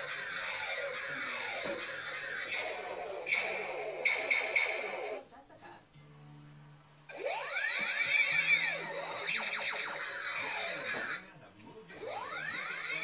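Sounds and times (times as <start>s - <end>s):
toy gun whistling tones: 0.3s - 5.2s, 7.4s - 11.2s.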